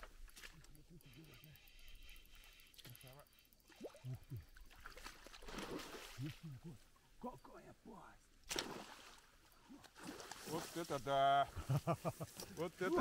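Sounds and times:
men muttering and exclaiming: 0.4s - 3.3s, 6.2s - 8.2s, 10.4s - 13.0s.

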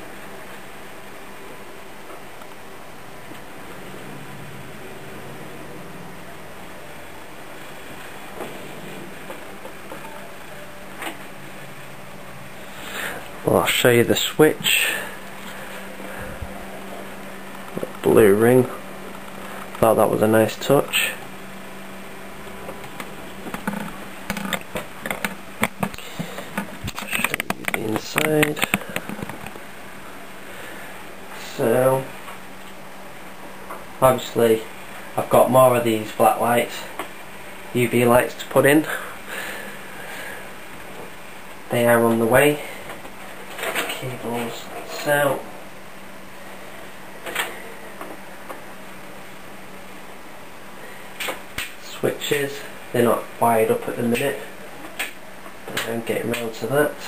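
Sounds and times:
computer cooling fans humming: 0.0s - 57.0s.

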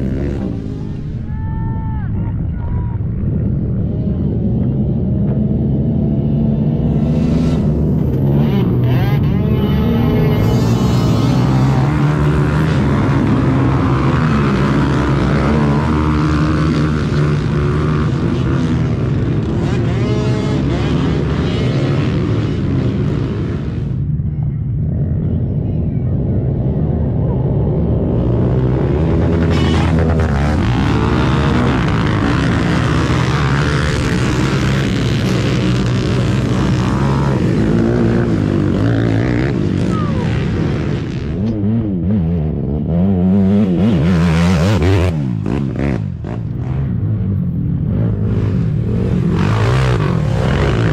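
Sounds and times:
small engines revving: 5.3s - 24.0s, 27.7s - 47.1s, 47.9s - 50.9s.

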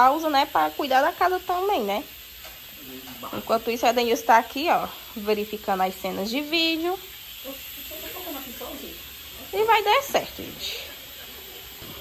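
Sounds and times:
background hiss: 0.0s - 12.0s
faint distant voices: 7.3s - 12.0s.

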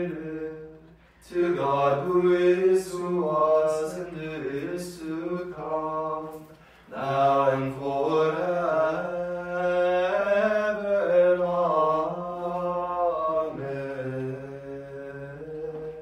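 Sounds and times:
voices chanting together: 0.0s - 16.0s.

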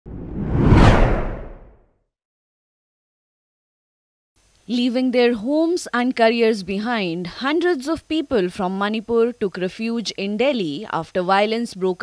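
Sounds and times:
low rumble: 0.0s - 1.8s
rising whoosh: 0.0s - 1.8s.

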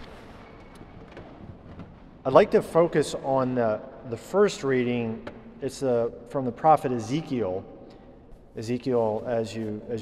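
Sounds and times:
low steady hiss: 2.2s - 10.0s.

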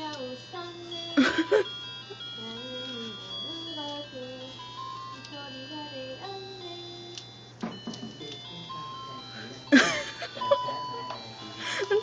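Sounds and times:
tinny electronic melody: 0.0s - 12.0s.

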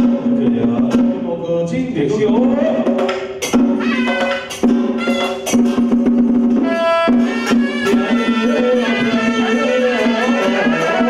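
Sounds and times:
sharp percussion strikes: 0.0s - 1.3s, 2.2s - 11.0s
wind instrument melody: 3.5s - 11.0s.

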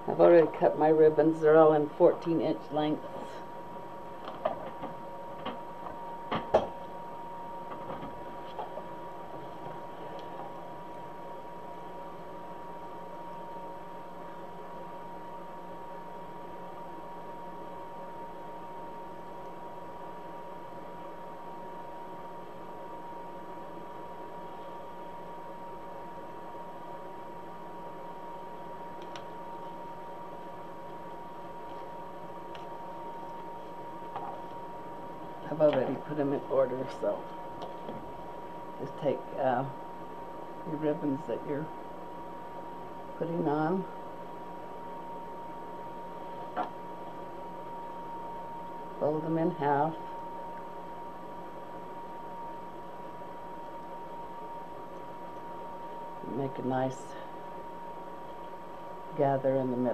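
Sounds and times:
faint background hum: 0.0s - 59.9s.

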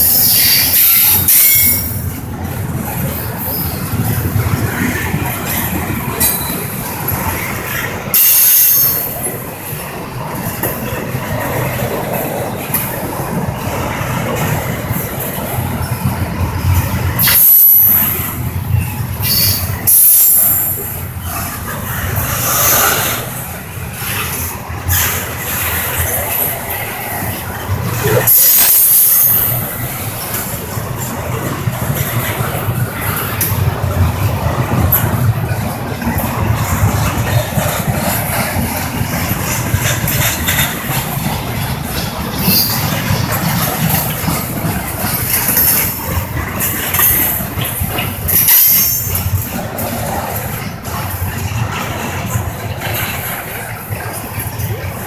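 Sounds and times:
high-pitched wheel squeal: 0.0s - 2.0s, 18.8s - 20.7s
freight train wheels rumbling: 0.0s - 55.0s.

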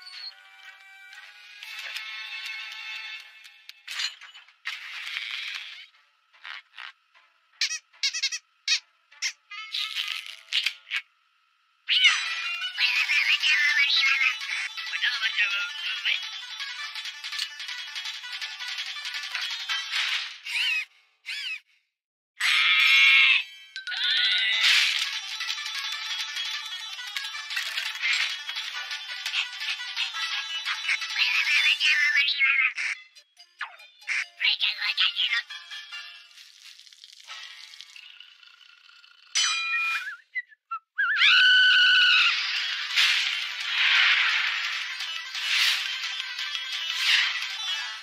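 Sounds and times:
cartoon squeak bending in pitch: 7.6s - 10.1s, 20.5s - 21.6s
high-pitched cartoon whistle: 39.6s - 42.4s.

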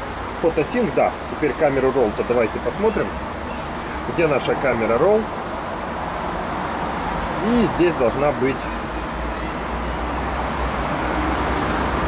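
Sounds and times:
cars passing on road: 0.0s - 12.0s.

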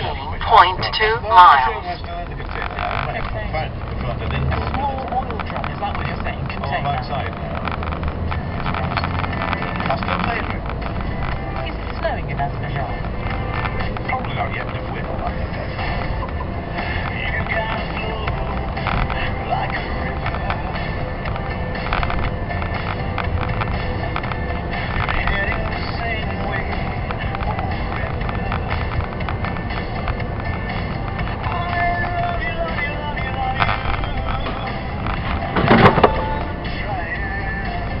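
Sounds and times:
road and engine rumble in car: 0.0s - 38.0s
sharp knock: 35.6s - 36.3s.

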